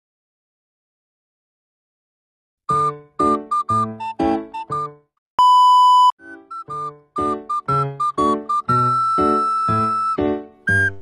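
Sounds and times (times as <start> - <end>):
music notes: 6.2 - 11.0.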